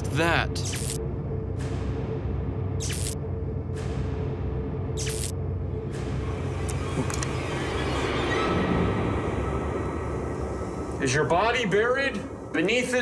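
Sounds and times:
ominous rumbling drone: 0.0s - 13.0s.

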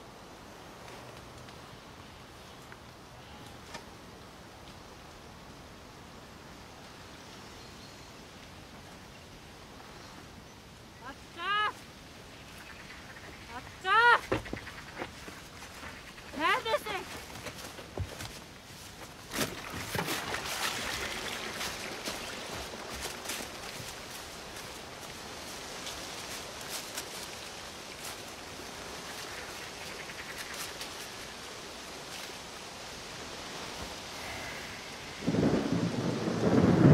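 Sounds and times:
rushing hiss with ticks: 0.0s - 7.5s, 11.8s - 19.3s, 20.2s - 36.9s
deep thunder rumble: 34.9s - 36.9s.

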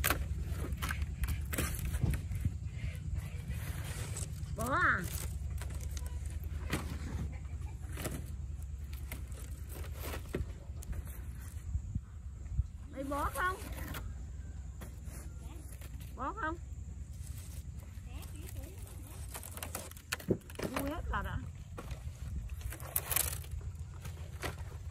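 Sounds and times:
steady low rumble: 0.0s - 24.9s.

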